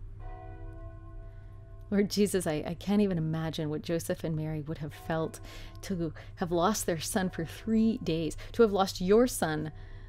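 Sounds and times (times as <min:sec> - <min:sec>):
distant church bell ringing: 0:00.0 - 0:03.7.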